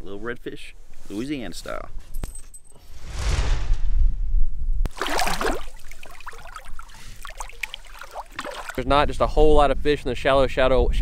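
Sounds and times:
water splashing: 4.9s - 8.9s.

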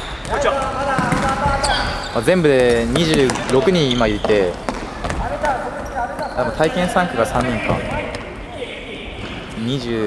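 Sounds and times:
shoe squeaks on wooden floor: 1.4s - 6.7s.

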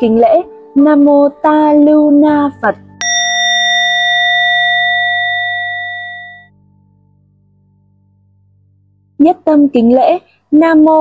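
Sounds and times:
bowl bell ringing: 3.0s - 6.5s.

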